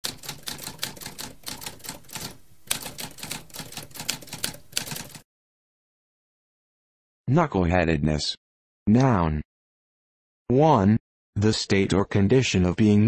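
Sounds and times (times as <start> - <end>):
typewriter keys striking: 0.0 - 5.2.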